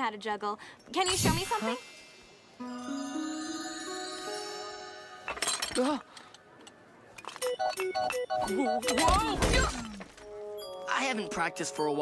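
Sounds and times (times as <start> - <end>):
ceramics crashing and shattering: 5.3 - 5.9, 8.8 - 10.2.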